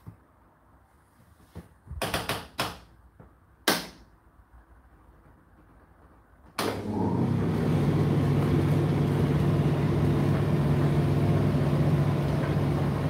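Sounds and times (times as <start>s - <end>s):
tumble dryer humming: 6.6s - 13.0s.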